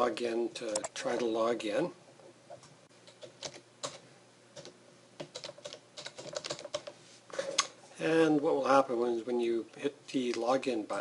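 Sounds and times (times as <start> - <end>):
computer keyboard clicks: 4.6 - 6.9.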